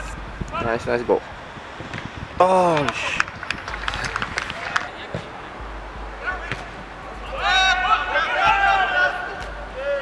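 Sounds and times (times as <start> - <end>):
players shouting: 3.8 - 10.0
ball kicks: 6.4 - 7.5, 8.4 - 9.8.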